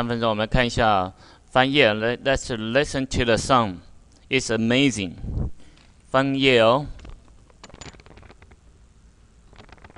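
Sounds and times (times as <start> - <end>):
handling noise rustles: 6.8 - 8.7, 9.4 - 9.9.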